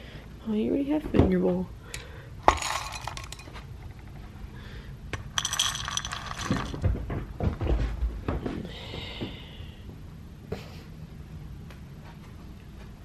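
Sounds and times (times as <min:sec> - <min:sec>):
kibble clattering into ceramic bowl: 0:02.5 - 0:03.6, 0:05.3 - 0:06.9.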